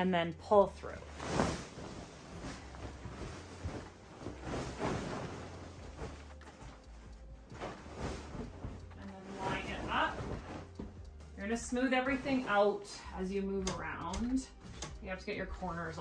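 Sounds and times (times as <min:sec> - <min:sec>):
bedding fabric rustling: 0:00.4 - 0:13.6.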